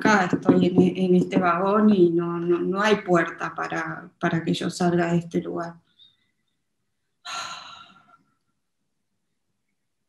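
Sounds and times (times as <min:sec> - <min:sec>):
woman sighing: 0:07.3 - 0:08.0.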